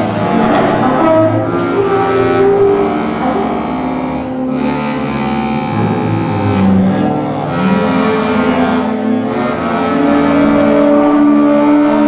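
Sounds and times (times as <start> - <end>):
improvised ensemble music: 0.0 - 12.0.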